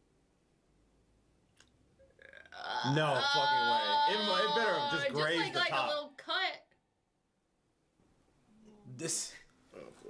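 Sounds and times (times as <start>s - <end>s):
loud drawn-out voice: 2.7s - 6.6s.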